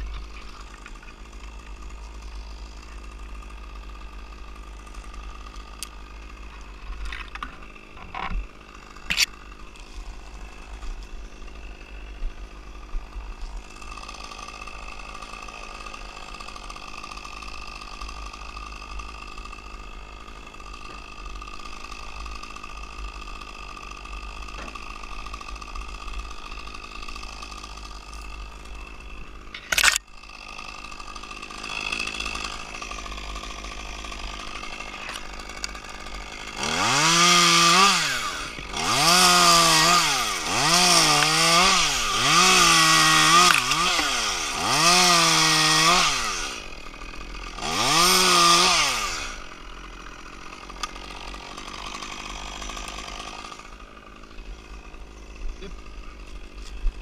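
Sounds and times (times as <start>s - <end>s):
chainsaw cutting wood: 0.0s - 57.0s
chainsaw idling: 0.0s - 57.0s.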